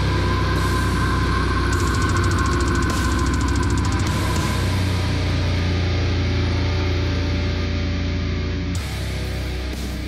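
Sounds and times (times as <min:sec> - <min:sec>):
rapid cymbal strokes: 0:00.0 - 0:06.8
heavy metal guitars and drums: 0:00.0 - 0:10.0.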